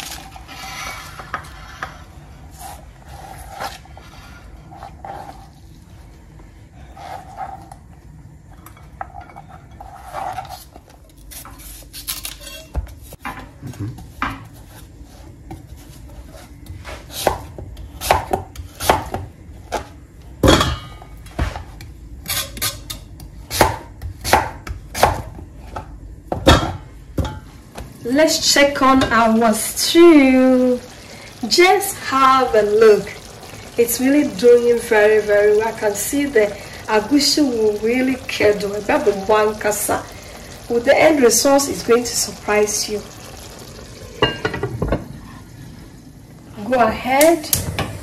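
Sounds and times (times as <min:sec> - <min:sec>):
soft scraping and handling: 0:00.2 - 0:07.8.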